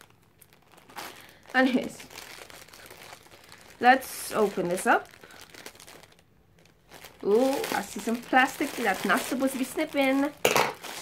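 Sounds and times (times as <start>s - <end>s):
plastic package crinkling: 0.0s - 11.0s.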